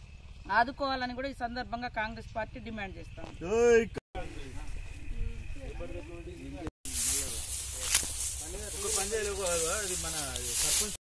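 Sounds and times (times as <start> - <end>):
people talking: 0.5 - 11.0.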